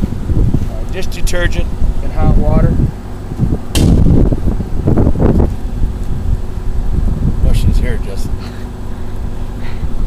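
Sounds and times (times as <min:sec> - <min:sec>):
wind buffeting microphone: 0:00.0 - 0:08.5.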